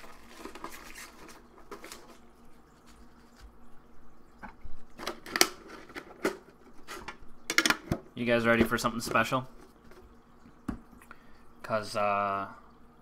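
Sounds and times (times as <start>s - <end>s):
cards rustling: 0.0s - 2.2s.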